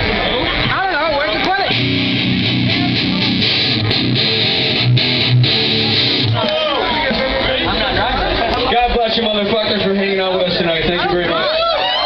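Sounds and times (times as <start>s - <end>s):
distorted electric guitar chords: 0.0s - 8.4s
bass and drums: 0.0s - 10.9s.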